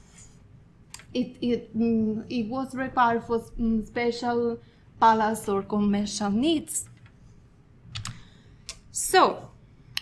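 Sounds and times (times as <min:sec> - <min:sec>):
computer key clicks: 0:07.9 - 0:08.8.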